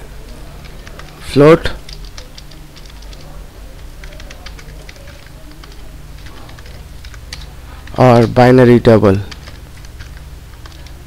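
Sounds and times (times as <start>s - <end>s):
steady low hum: 0.0s - 11.0s
computer keyboard keystrokes: 0.3s - 8.4s, 9.3s - 11.0s.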